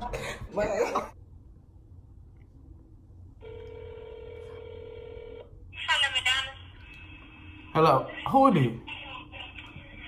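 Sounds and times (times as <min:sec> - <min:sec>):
telephone ringback tone: 0:03.4 - 0:05.5.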